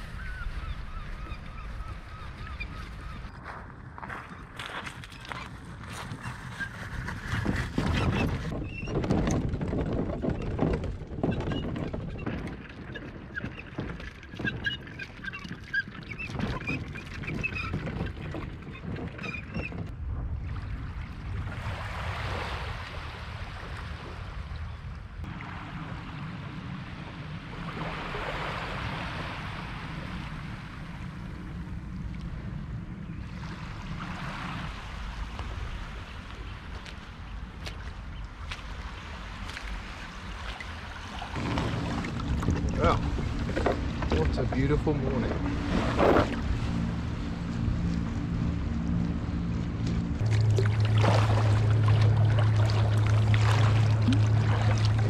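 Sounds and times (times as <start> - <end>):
birds calling: 0.0 - 3.4
footsteps on shingle: 3.3 - 7.6
trolley wheels crunching on shingle: 3.3 - 8.4
small waves lapping: 20.3 - 55.0.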